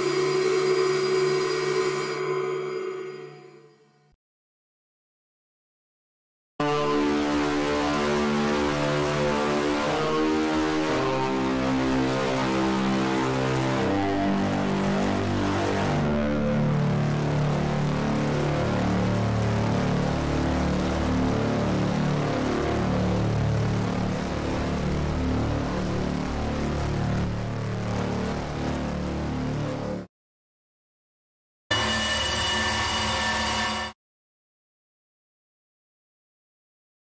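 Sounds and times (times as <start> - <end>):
eerie sustained synth chords: 0.0 - 4.1, 6.6 - 30.0
gritty noisy layer: 14.4 - 30.1.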